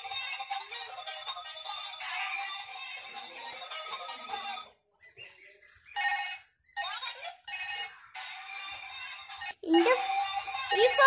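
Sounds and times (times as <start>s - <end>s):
toy phone electronic ringtone: 0.0s - 4.8s, 5.8s - 11.0s.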